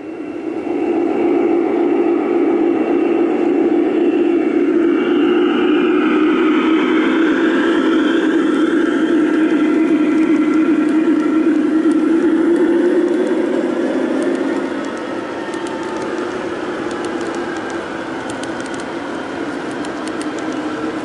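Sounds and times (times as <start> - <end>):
high-pitched motor whine: 0.0 - 21.0
model locomotives droning: 0.0 - 21.0.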